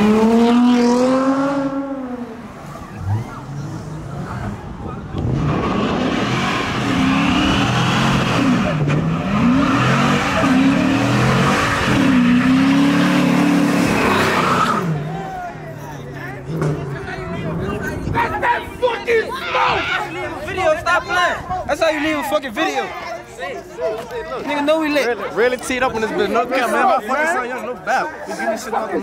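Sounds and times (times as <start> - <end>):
car engine revving: 0.0 - 15.3.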